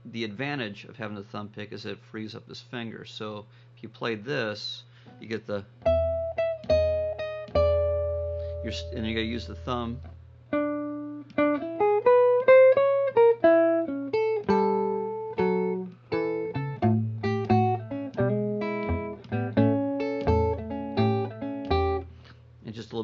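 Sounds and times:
electric guitar blues phrase: 5.7s - 22.2s.

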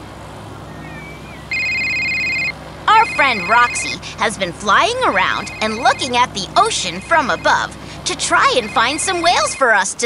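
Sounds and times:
low steady hum: 0.0s - 10.0s
electronic two-tone trill: 0.8s - 4.0s, 4.9s - 6.3s.

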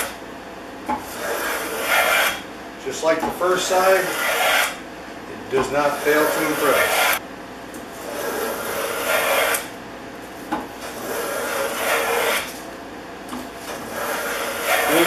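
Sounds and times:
hand plane shearing wood: 1.1s - 2.4s, 3.4s - 4.8s, 5.6s - 7.2s, 8.0s - 9.7s, 10.8s - 12.6s, 13.7s - 15.0s.

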